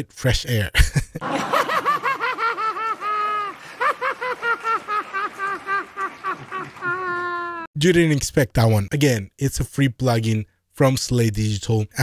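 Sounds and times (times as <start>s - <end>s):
man laughing high-pitched: 0.7s - 7.7s.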